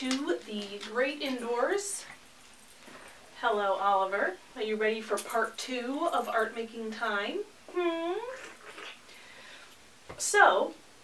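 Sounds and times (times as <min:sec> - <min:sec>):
person humming: 0:07.7 - 0:08.9.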